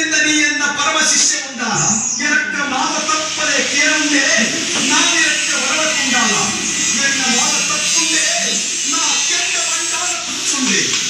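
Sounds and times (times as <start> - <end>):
voices: 0.0 - 11.0
steady buzz: 2.6 - 11.0.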